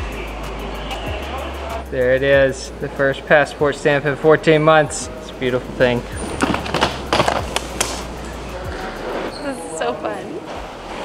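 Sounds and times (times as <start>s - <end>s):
suitcase wheels rumbling on floor: 5.5s - 9.4s.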